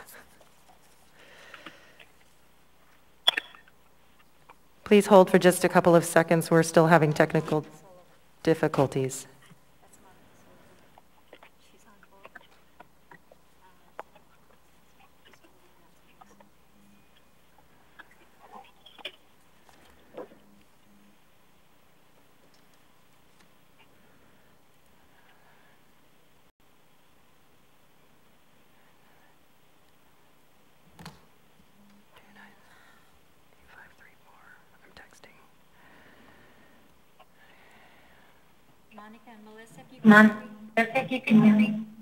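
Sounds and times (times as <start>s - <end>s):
faint hum: 0.0s - 42.0s
faint murmured whispering: 9.4s - 21.2s, 31.8s - 39.8s.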